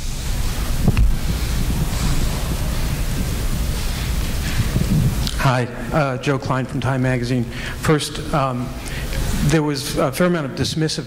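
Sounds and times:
microphone handling noise: 0.0s - 5.4s.

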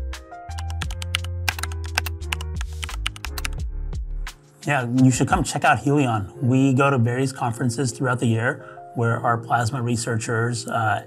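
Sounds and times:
background music with bass: 0.0s - 11.0s.

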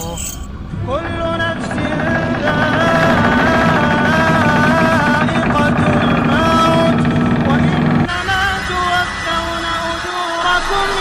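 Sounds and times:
steady low drone: 0.6s - 10.1s
person chanting recitation: 0.8s - 11.0s.

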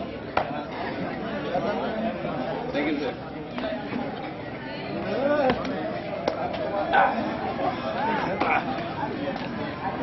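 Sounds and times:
many people chattering: 0.0s - 10.0s.

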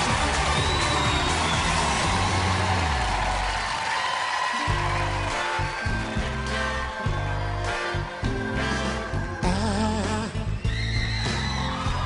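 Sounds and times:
audience cheering: 0.0s - 9.3s, 10.2s - 12.0s.

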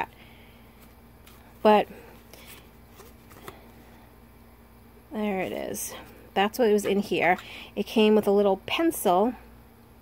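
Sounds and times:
playing cards rustling and clicking: 0.8s - 3.8s.

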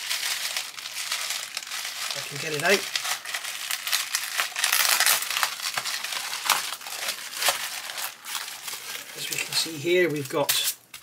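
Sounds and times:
bubble wrap crinkling: 0.0s - 11.0s.

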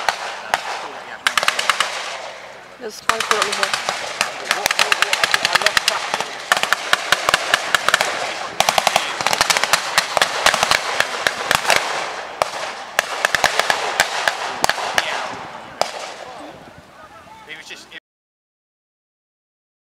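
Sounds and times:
rapid blank gunfire: 0.0s - 2.4s, 3.1s - 16.2s.

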